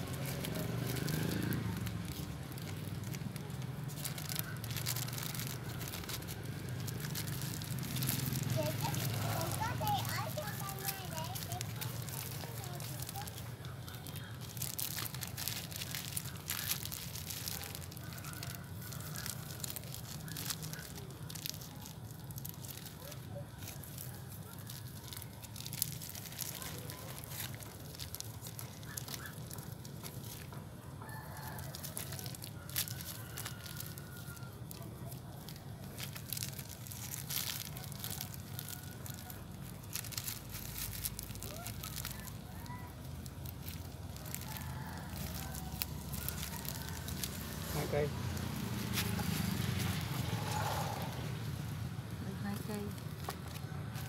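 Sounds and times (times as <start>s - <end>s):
plastic bag crinkling: 0.0s - 54.0s.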